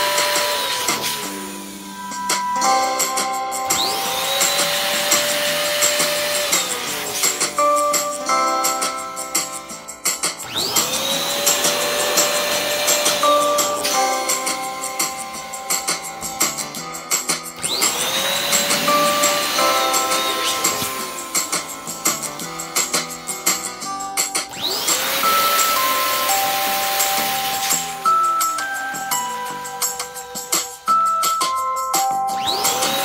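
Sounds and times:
electric balloon pump whining: 0:00.0 - 0:31.2, 0:32.2 - 0:33.0.

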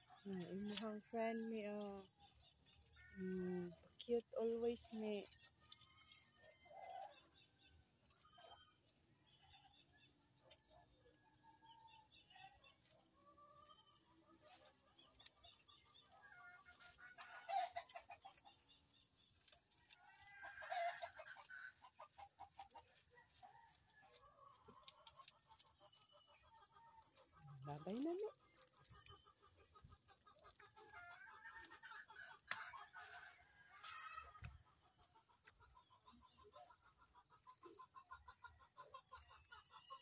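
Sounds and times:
chickens clucking: 0:12.8 - 0:40.0.

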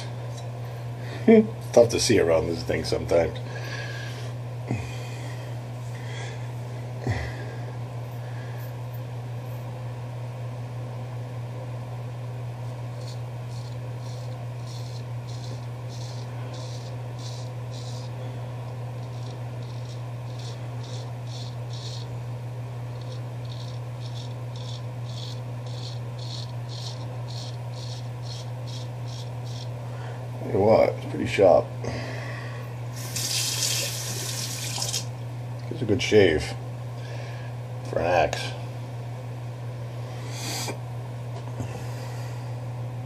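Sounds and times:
steady low hum: 0:00.0 - 0:43.0
straight razor scraping stubble: 0:12.7 - 0:18.3, 0:19.0 - 0:22.2, 0:22.9 - 0:29.8.

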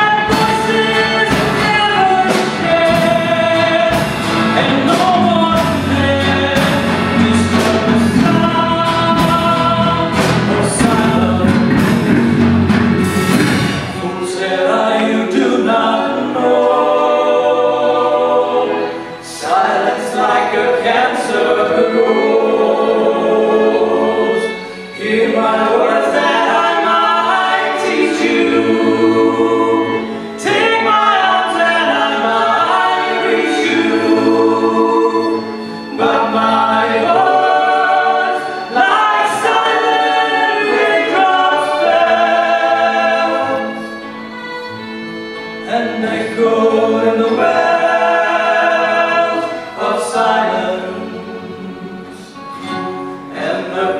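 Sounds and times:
violins: 0:00.0 - 0:53.9
voices singing in harmony: 0:00.0 - 0:53.9.

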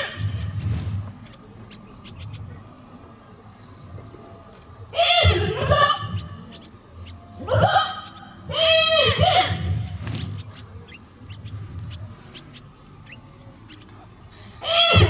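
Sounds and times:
low hum: 0:00.0 - 0:14.9.

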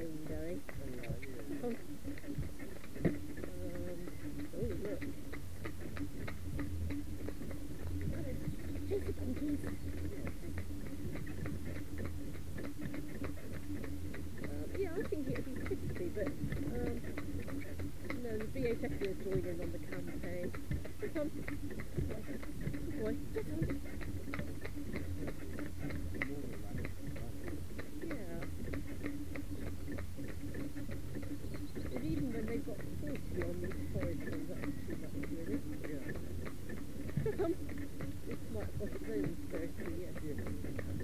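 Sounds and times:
carriage wheels rumbling: 0:00.0 - 0:41.0
hooves clip-clopping on tarmac: 0:00.0 - 0:41.0.

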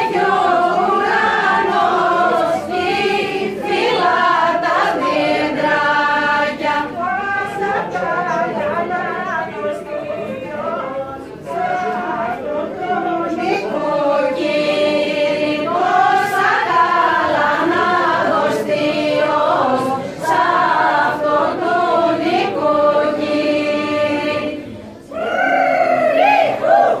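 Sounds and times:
mixed group singing a carol: 0:00.0 - 0:27.0.

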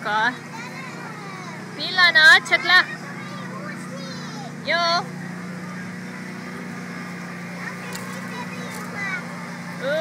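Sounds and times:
faint voices: 0:00.0 - 0:10.0
low mechanical hum: 0:00.0 - 0:10.0.

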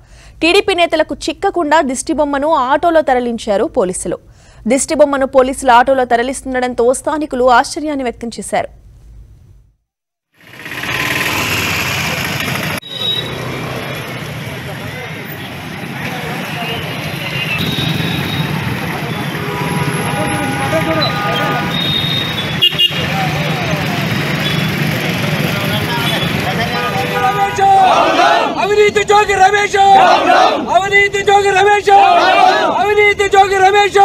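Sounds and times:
motor traffic: 0:10.4 - 0:33.7
vehicle horns honking: 0:12.8 - 0:13.6, 0:16.5 - 0:23.3, 0:24.2 - 0:24.9, 0:25.6 - 0:28.1
crowd voices: 0:23.0 - 0:32.9.

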